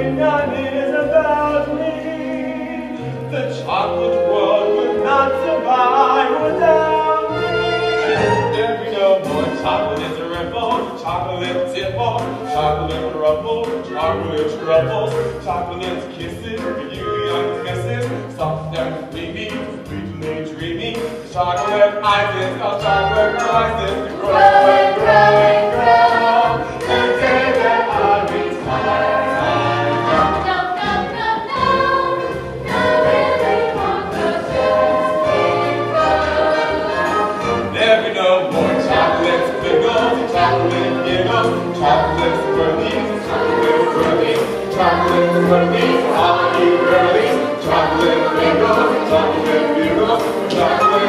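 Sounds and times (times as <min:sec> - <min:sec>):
chorus singing: 0:00.0 - 0:51.0
instrumental accompaniment with bass: 0:00.0 - 0:51.0.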